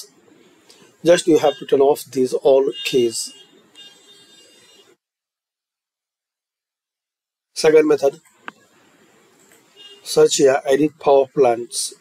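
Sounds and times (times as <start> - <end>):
microphone hiss: 0.0 - 5.0, 7.5 - 12.0
faint room noise: 7.5 - 12.0.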